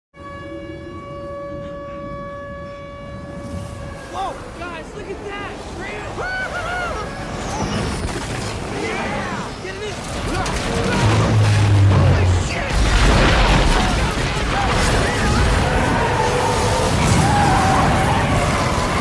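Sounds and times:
steady horn-like tone: 0.2s - 4.5s, 10.8s - 12.8s
low rumble: 10.3s - 16.0s
many voices calling out: 13.4s - 19.0s.

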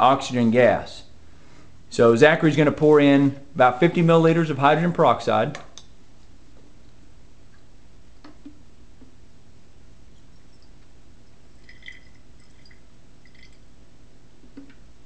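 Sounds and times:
low room hum: 0.0s - 15.0s
liquid trickling into flask: 10.2s - 13.7s.

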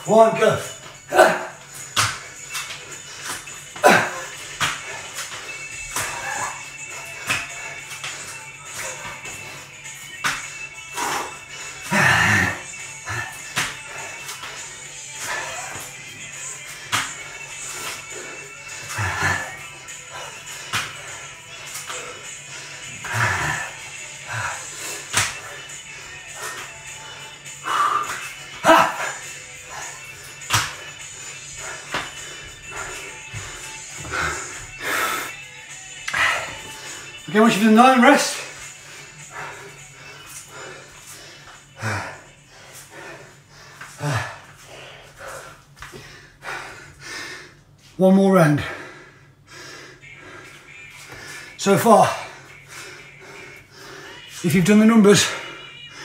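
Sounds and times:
background music: 0.0s - 45.7s, 47.9s - 56.0s
hands and feet slapping tiled floor: 0.8s - 36.9s, 37.5s - 46.6s, 50.3s - 51.5s.

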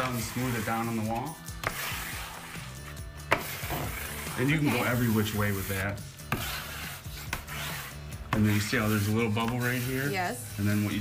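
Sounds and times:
squeegee rubbing over wallpaper: 0.0s - 11.0s.

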